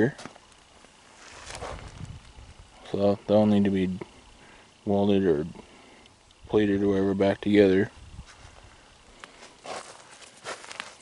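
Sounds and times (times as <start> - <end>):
footsteps crunching on stubble: 0.0 - 2.9, 8.1 - 11.0.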